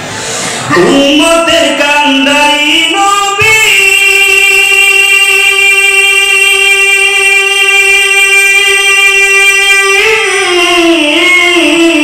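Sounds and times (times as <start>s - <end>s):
man singing a long note: 0.7s - 12.0s.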